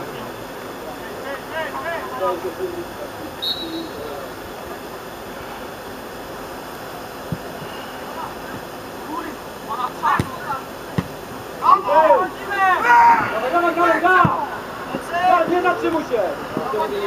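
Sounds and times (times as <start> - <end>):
football being kicked: 7.3 - 7.7, 10.2 - 11.2, 14.2 - 14.5
distant players shouting: 7.3 - 16.9.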